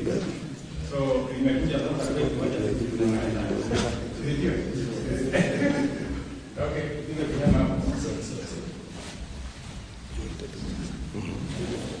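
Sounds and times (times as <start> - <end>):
faint indistinct voices: 10.0 - 12.0.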